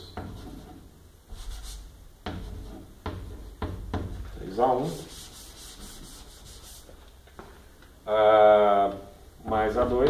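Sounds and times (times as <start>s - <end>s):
chalk scratching on chalkboard: 0.2s - 2.9s, 4.9s - 7.0s.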